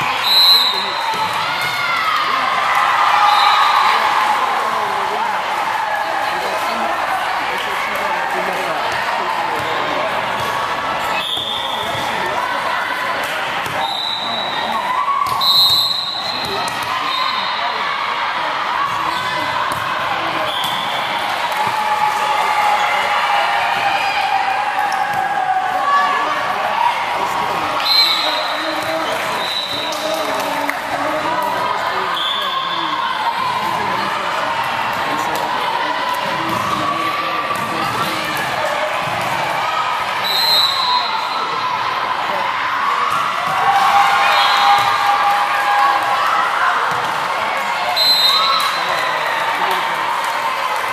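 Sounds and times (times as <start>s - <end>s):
crowd chatter in hall: 0.0s - 50.9s.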